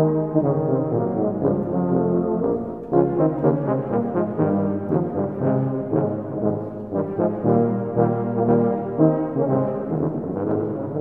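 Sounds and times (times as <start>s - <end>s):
low brass ensemble playing march: 0.0s - 11.0s.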